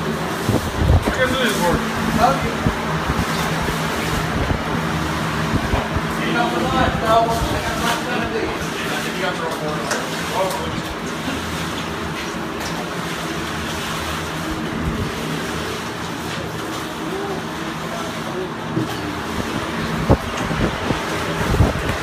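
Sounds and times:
steady rushing noise: 0.0s - 9.3s, 19.2s - 22.0s
distant voices: 0.0s - 22.0s.

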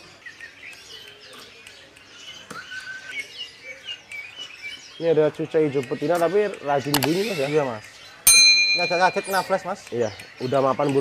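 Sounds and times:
songbirds chirping: 0.0s - 11.0s
steady bird whistle: 2.3s - 5.2s.

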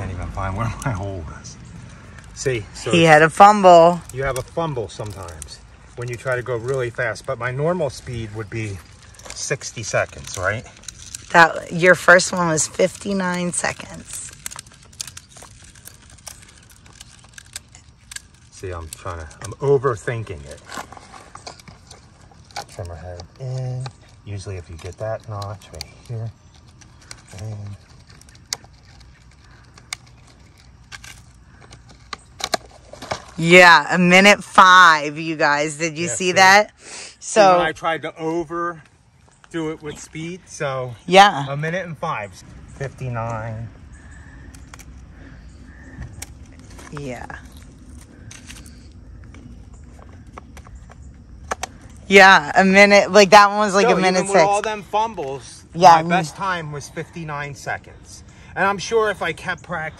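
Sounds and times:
low steady background hum: 0.0s - 59.9s.

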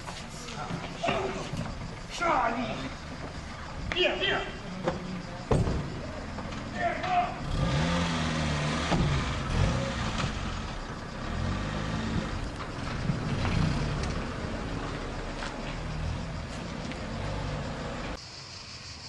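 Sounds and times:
car engine pulling away: 4.8s - 18.2s
car door shutting: 8.8s - 9.4s.

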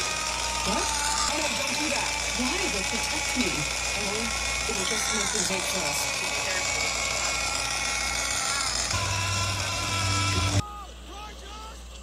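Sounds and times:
steady held tones: 0.0s - 10.7s.

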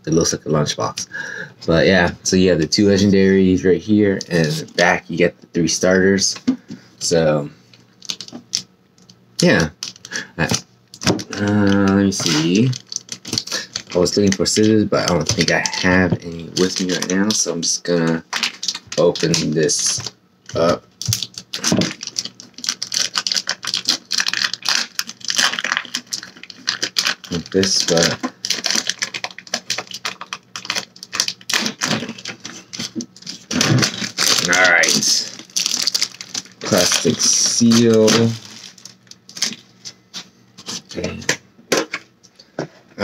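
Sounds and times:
plastic shrink wrap crinkling: 7.8s - 41.0s.

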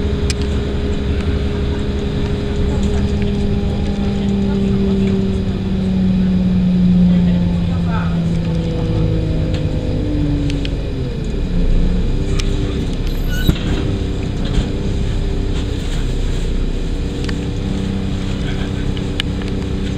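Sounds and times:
train engine and rail hum: 0.0s - 19.9s.

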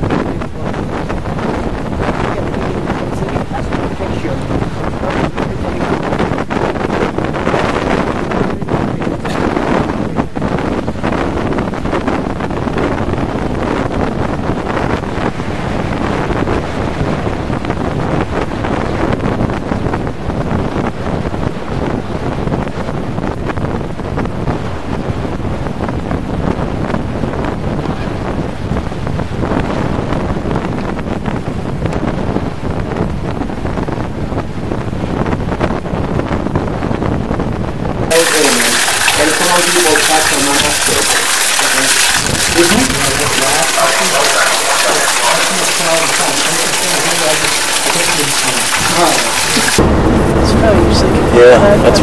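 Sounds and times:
wind buffeting microphone: 0.0s - 52.0s
water splashing from fountain: 38.1s - 49.8s.

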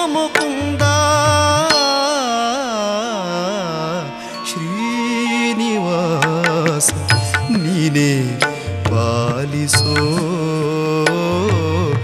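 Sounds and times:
devotional melody with long notes: 0.0s - 12.0s
drum strokes: 6.1s - 10.5s.

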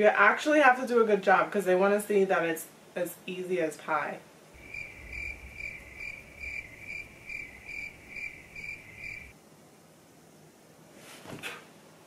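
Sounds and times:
high-pitched cricket chirping: 4.6s - 9.4s.

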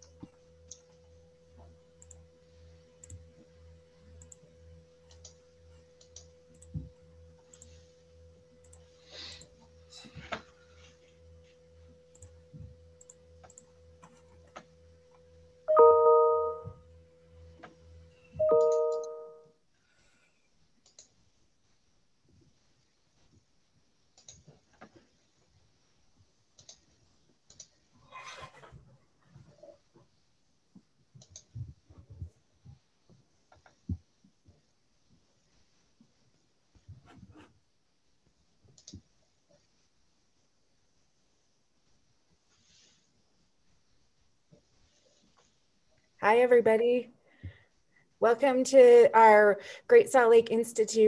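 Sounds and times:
steady electrical hum: 0.0s - 51.0s
faint clicks: 24.2s - 24.5s, 27.5s - 27.7s, 31.2s - 31.5s, 38.7s - 39.1s.

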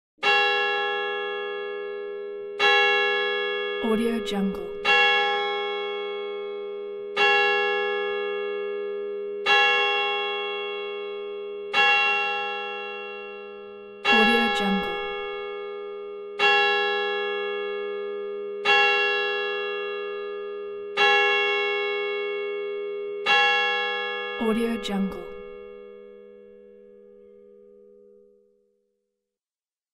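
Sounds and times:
large church bell ringing: 0.2s - 28.4s.

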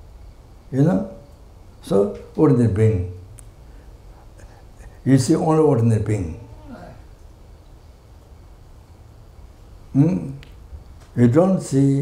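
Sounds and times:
faint click: 3.3s - 3.6s
man speaking: 5.0s - 7.0s, 10.0s - 10.4s, 11.2s - 12.0s.

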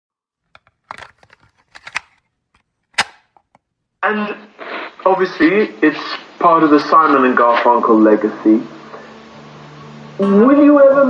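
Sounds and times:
sharp clicks and pops: 0.5s - 3.7s.

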